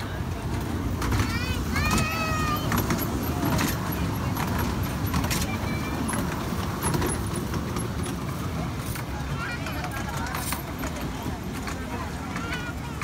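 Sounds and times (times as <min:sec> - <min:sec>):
miniature train rumbling on track: 0:00.0 - 0:13.0.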